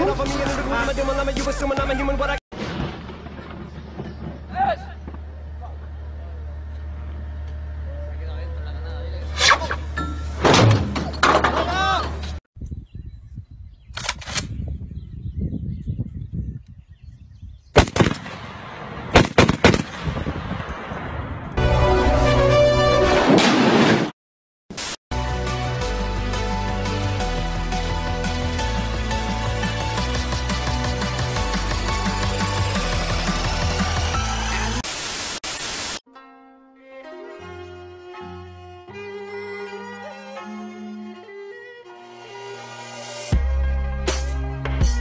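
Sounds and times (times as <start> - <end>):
background music: 0.0 - 2.4, 21.6 - 23.3, 25.1 - 34.8, 36.1 - 45.0
shotgun shots: 17.8 - 20.4
loud static hiss: 33.8 - 36.0.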